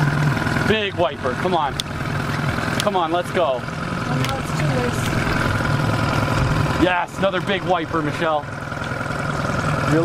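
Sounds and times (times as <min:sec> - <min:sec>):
outboard motor running: 0:00.0 - 0:10.0.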